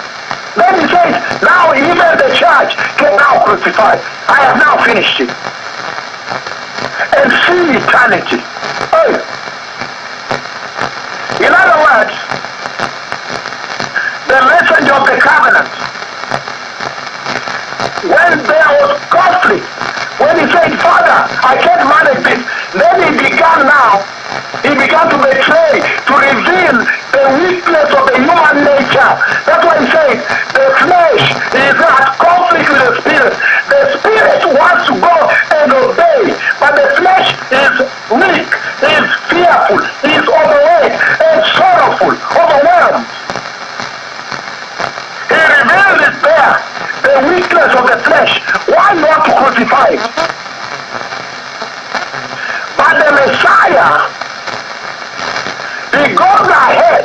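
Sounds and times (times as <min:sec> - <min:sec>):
man preaching into a microphone: 0:00.5 - 0:05.4, 0:06.9 - 0:09.4, 0:11.2 - 0:12.4, 0:13.9 - 0:15.9, 0:17.5 - 0:43.2, 0:45.2 - 0:50.1, 0:52.3 - 0:54.2, 0:55.6 - 0:57.0
person talking on radio: 0:00.5 - 0:06.0, 0:06.8 - 0:16.5, 0:17.2 - 0:44.0, 0:44.8 - 0:50.4, 0:51.4 - 0:57.0.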